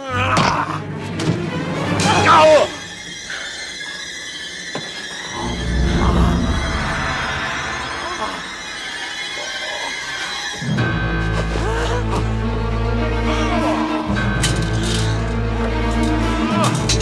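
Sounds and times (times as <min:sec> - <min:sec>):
sustained high tones: 0:05.2 - 0:09.2.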